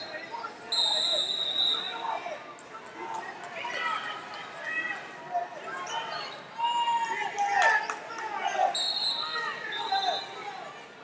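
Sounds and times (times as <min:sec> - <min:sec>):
voices calling out in hall: 0:00.0 - 0:11.0.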